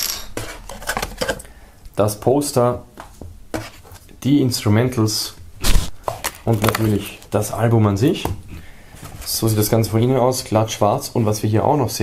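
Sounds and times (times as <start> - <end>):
cardboard and paper handling: 0.4 - 1.4, 5.7 - 7.4.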